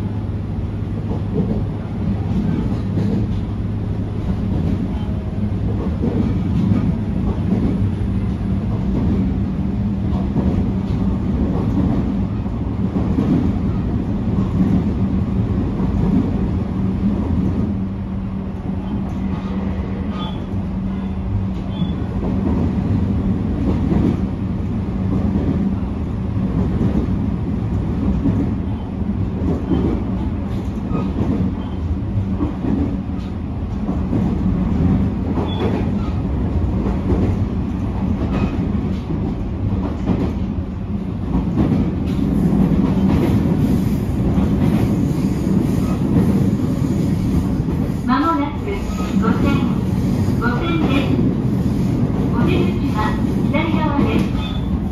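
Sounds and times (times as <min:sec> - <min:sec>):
railcar engine drone: 0:00.0 - 0:54.9
wheels rumbling on rails: 0:00.0 - 0:54.9
rail-joint clicks: 0:01.0 - 0:03.6, 0:04.4 - 0:09.2, 0:28.0 - 0:40.5, 0:41.2 - 0:48.0, 0:48.7 - 0:54.9.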